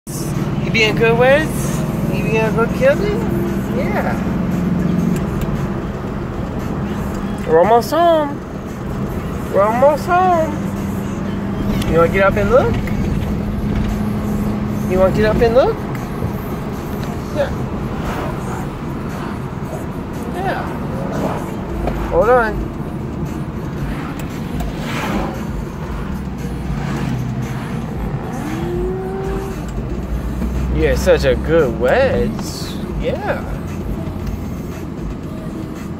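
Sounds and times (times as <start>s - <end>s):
car engine and road noise: 0.0s - 35.9s
short rising tone: 23.7s - 29.7s.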